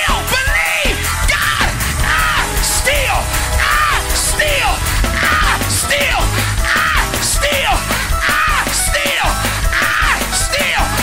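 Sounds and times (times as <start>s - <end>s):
gospel church band music: 0.0s - 11.0s
loud yells: 1.3s - 8.7s.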